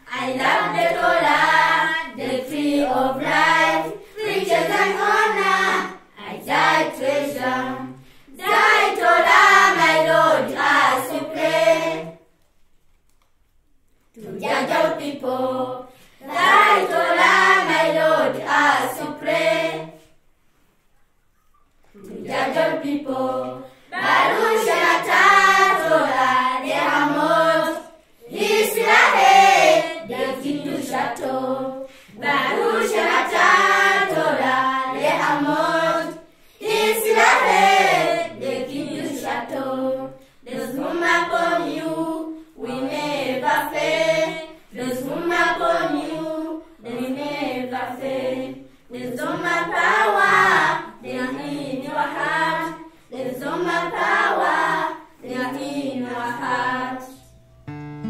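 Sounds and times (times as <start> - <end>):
group of voices singing: 0.0 - 12.3, 14.1 - 20.2, 21.9 - 57.5
short breaths: 8.0 - 8.3, 31.8 - 32.2
person singing: 57.1 - 58.0.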